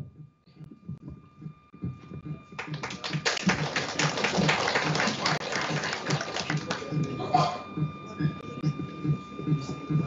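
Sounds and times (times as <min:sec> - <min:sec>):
audience applauding: 0:02.6 - 0:07.1.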